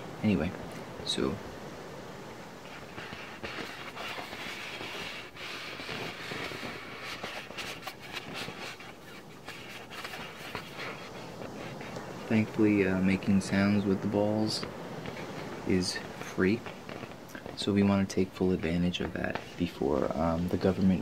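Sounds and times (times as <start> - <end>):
hands scratching beach ball: 2.6 - 12.6, 15.0 - 21.0.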